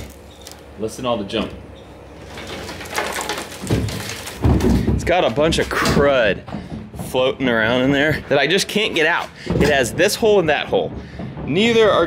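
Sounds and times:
debris rattling inside metal tank: 2.2s - 6.4s.

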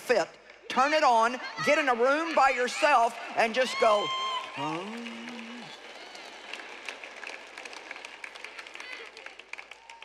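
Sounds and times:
audience applause: 2.0s - 10.0s.

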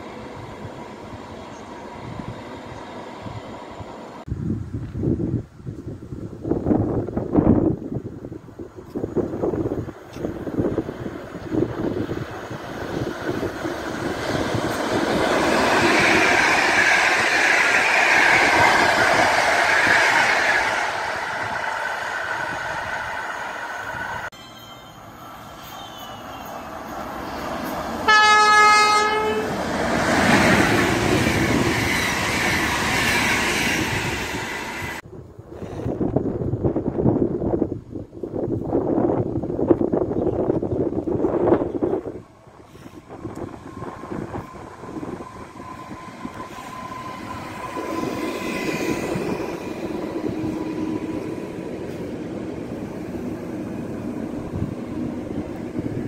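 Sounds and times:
locomotive rushing past: 9.2s - 35.0s, 38.8s - 56.0s
locomotive horn: 28.0s - 29.6s.

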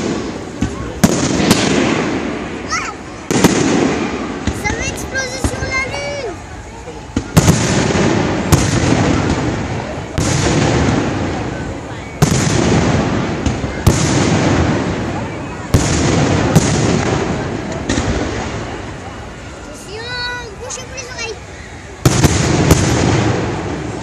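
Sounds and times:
fireworks bursting with echo: 0.0s - 24.0s.

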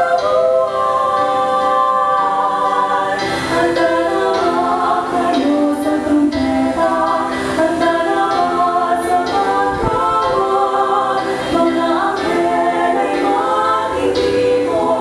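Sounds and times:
women singing into microphones: 0.0s - 15.0s.

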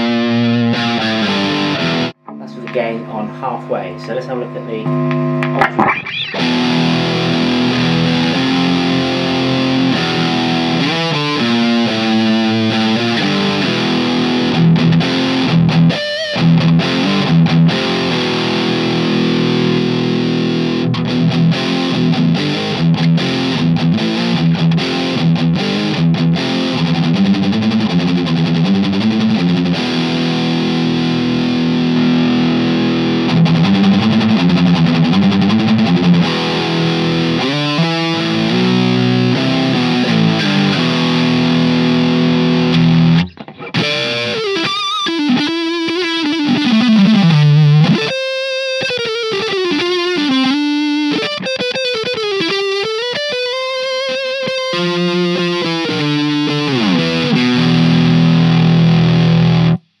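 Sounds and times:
distorted electric guitar: 0.0s - 60.0s.

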